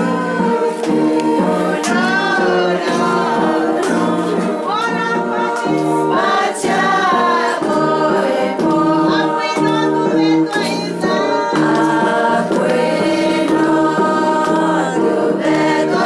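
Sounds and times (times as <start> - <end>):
women singing in unison: 0.0 - 16.0.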